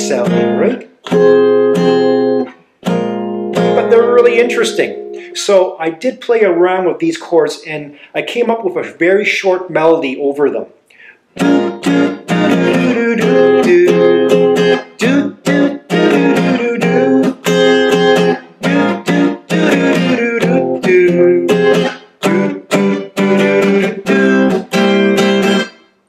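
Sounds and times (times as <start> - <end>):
acoustic guitar jazzy chords: 0.0 - 5.8, 11.0 - 26.0.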